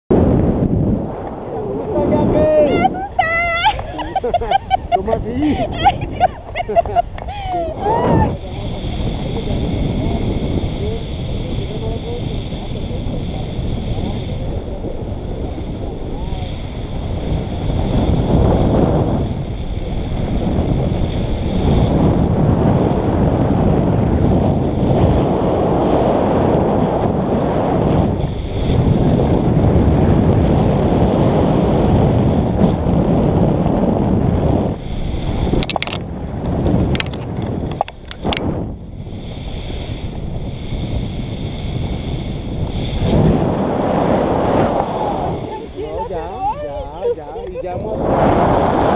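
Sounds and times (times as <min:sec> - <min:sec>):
wind rushing over microphone: 0:00.1 - 0:48.9.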